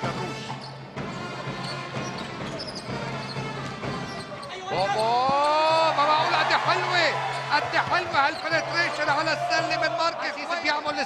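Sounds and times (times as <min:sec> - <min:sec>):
arena crowd noise: 0:02.8 - 0:11.0.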